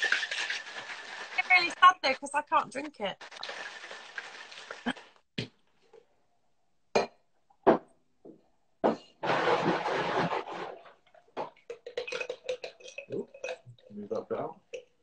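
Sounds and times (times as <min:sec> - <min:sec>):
ice rattling in cocktail shaker: 0:00.0 - 0:02.2, 0:03.2 - 0:05.2, 0:11.7 - 0:13.9.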